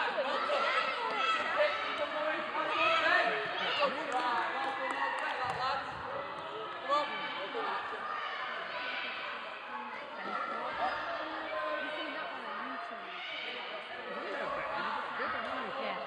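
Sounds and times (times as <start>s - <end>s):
people calling out and chattering: 0.0s - 16.0s.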